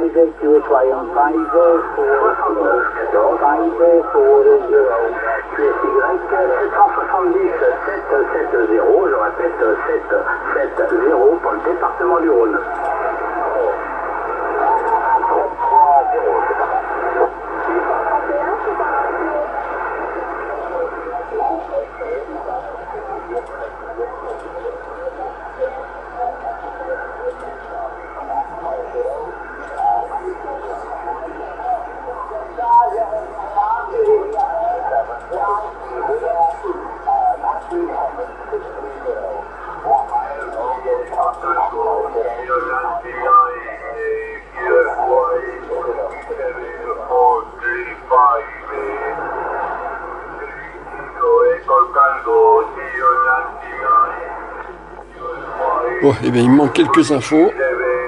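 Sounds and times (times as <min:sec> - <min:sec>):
radio band noise: 0:00.0 - 0:58.0
weak radio voices: 0:00.0 - 0:58.0.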